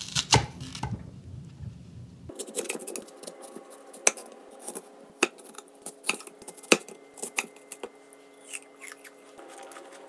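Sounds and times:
knife cutting through apple: 0.0 - 1.0, 2.3 - 10.0.

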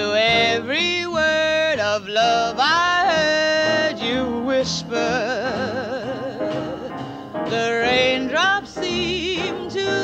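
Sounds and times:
bass: 0.0 - 10.0
drums: 0.0 - 10.0
piano: 0.0 - 10.0
woman singing jazz ballad: 0.0 - 10.0.

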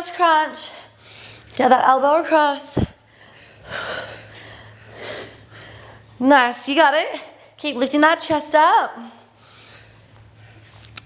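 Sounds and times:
woman breathing heavily: 0.6 - 1.5, 2.8 - 6.2, 9.0 - 10.7.

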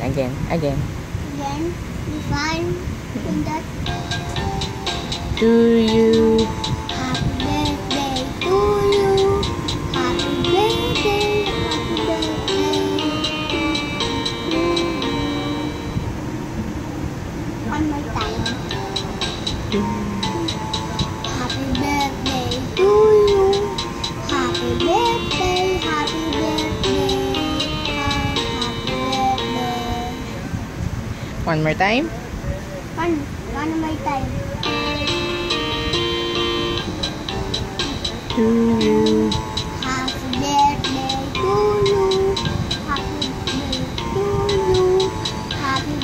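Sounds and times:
low steady background rumble: 0.0 - 34.9
held musical note: 3.2 - 30.6.

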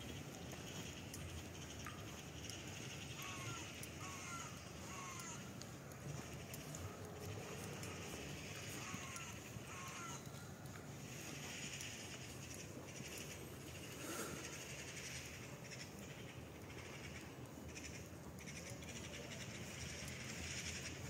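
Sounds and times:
animal calls: 2.4 - 16.0.

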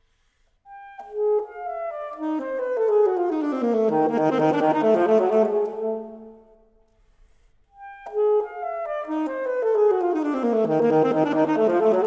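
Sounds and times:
alto saxophone: 0.7 - 7.0, 7.7 - 12.0
piano: 0.8 - 6.7.

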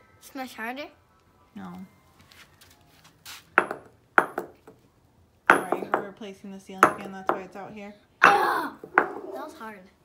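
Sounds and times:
hammer striking rock: 3.6 - 4.6, 5.5 - 6.1, 6.8 - 7.5.

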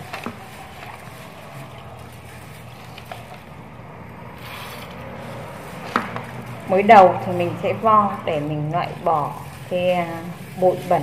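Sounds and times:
water swishing in a bowl: 0.0 - 11.0.

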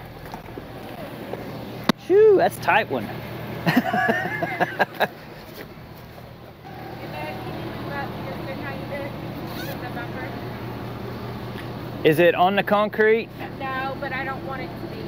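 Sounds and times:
vehicle engine idling: 0.0 - 15.0
voices: 6.6 - 15.0.

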